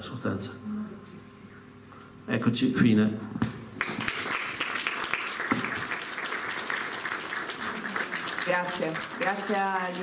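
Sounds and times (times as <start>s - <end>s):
audience applauding: 3.8s - 10.0s.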